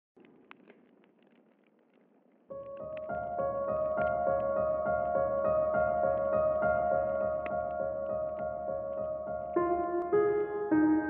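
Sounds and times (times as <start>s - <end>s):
small clicks: 0.2s - 10.2s
faint crackling hiss: 0.2s - 11.0s.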